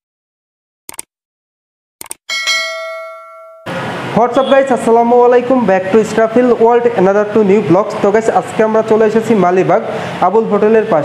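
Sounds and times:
short clicks: 0.9s - 1.1s
notification bell chime: 2.3s - 3.7s.

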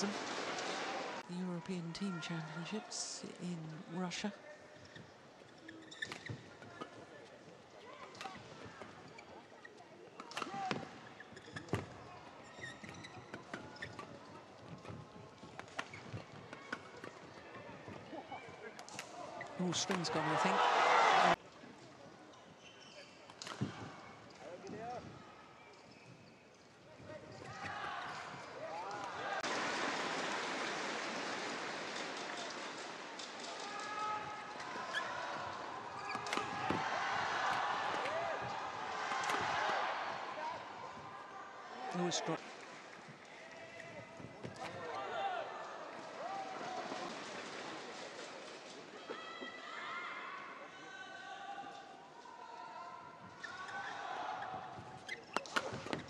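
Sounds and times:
crowd cheering and shouting: 20.0s - 21.4s, 33.6s - 41.8s.

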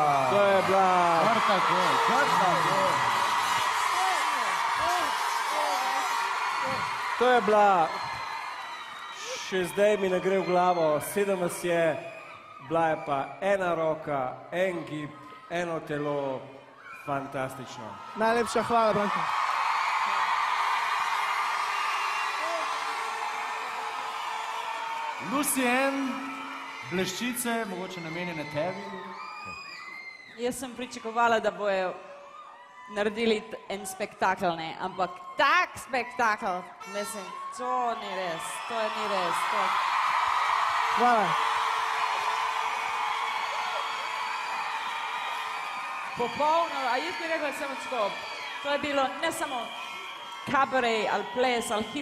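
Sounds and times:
audience applauding and cheering: 0.0s - 13.4s, 14.8s - 33.2s, 36.7s - 52.0s.

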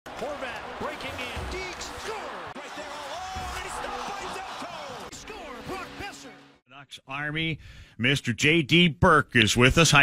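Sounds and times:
music: 0.5s - 6.6s.

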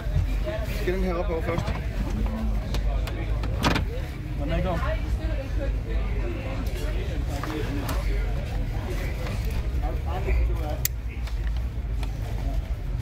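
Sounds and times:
faint voices: 0.0s - 13.0s.

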